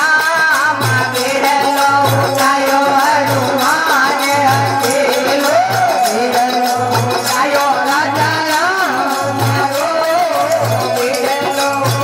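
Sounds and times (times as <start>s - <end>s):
harmonium: 0.0s - 12.0s
jingling hand percussion: 0.0s - 12.0s
women singing: 0.0s - 12.0s.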